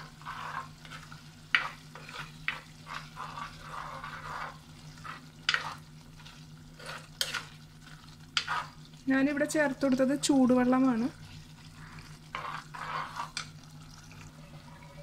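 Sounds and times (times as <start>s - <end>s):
ladle scraping clay pot: 0.0s - 7.6s, 8.4s - 8.8s, 11.3s - 15.0s
curry simmering sizzle: 0.0s - 15.0s.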